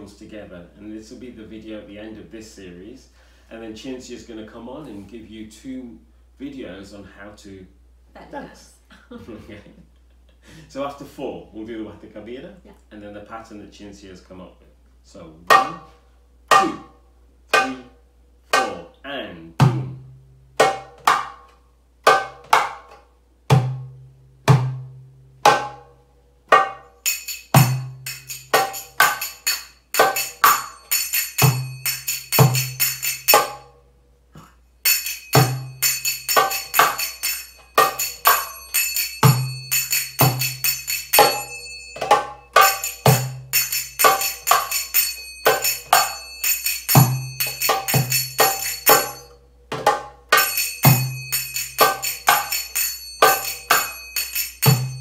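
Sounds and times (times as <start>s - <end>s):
goblet drum rhythm: 16.5s - 33.8s, 34.8s - 55.0s
finger cymbals ringing: 26.6s - 33.8s, 34.4s - 49.5s, 50.3s - 55.0s.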